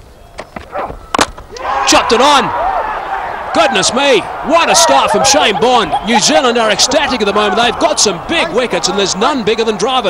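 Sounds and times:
crowd cheering: 1.5 - 10.0.

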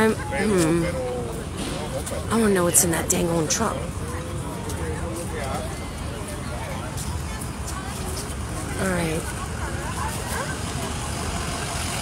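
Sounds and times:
faint voices: 0.0 - 12.0
vehicle engines rumbling: 0.0 - 12.0.

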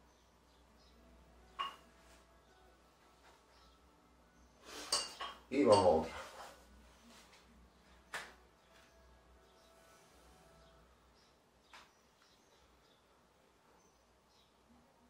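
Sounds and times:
dumbbell plates clinking: 1.6 - 1.9.

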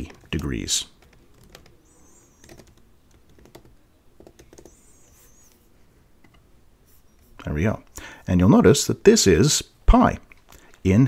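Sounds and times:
typing on a computer keyboard: 1.0 - 4.8.

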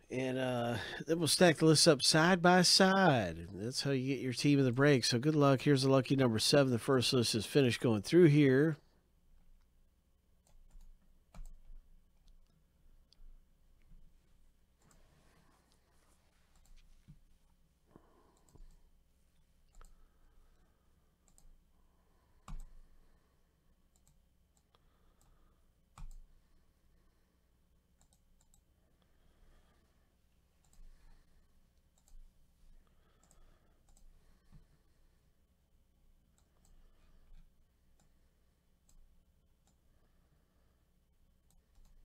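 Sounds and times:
faint steady hum: 0.0 - 42.0
computer mouse and keyboard clicks: 26.0 - 26.3.

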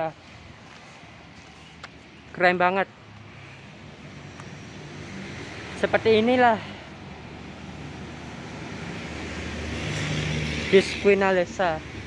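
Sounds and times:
vehicle engine droning: 3.2 - 12.0.

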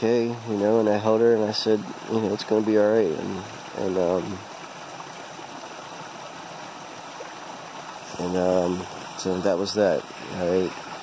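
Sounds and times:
stream and waterfall rushing: 0.0 - 11.0.

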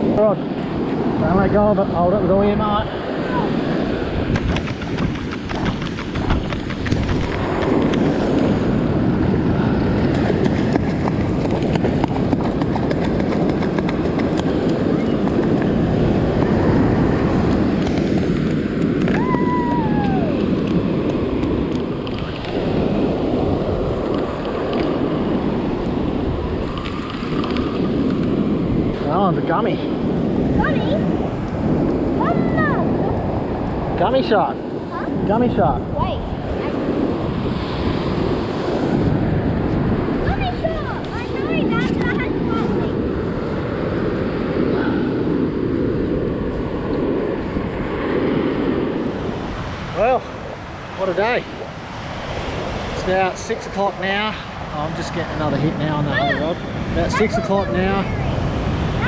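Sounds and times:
breaking surf: 0.0 - 59.0
wind buffeting microphone: 0.0 - 59.0.

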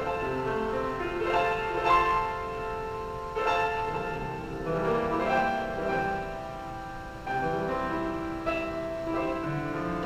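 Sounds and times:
grand piano chords: 0.0 - 10.0.

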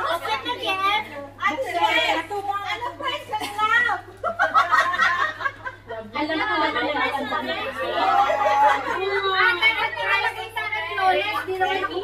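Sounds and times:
women chattering: 0.0 - 12.0
laughter: 3.4 - 6.0, 8.0 - 9.5.

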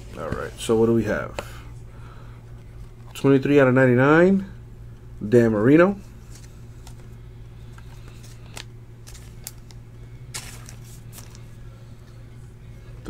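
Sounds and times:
low hum: 0.0 - 13.0
card sleeve rustling: 6.1 - 11.6.

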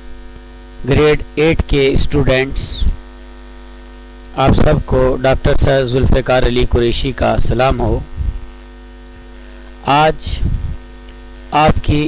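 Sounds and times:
electrical mains hum: 0.0 - 12.0
man speaking: 0.8 - 3.0, 4.3 - 8.2, 9.5 - 10.6, 11.5 - 12.0.

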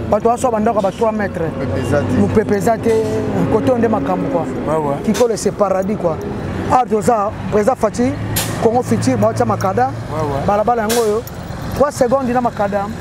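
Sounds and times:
heavy truck driving past: 0.0 - 13.0.

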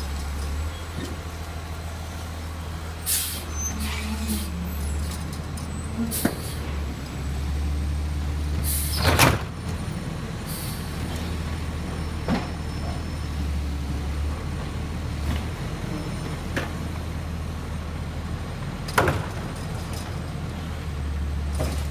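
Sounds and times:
loud clunk with hiss: 6.1 - 6.6, 8.6 - 9.5.

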